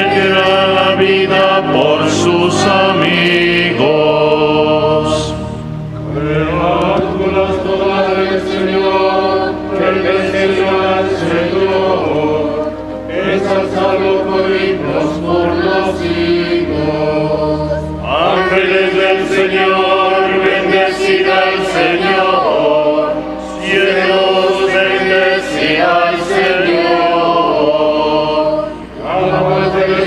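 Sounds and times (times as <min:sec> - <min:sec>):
choir singing a chant: 0:00.0 - 0:30.0.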